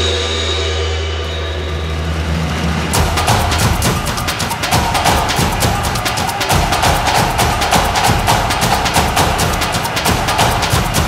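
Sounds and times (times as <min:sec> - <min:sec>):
sharp drum hit: 0:00.0 - 0:11.0.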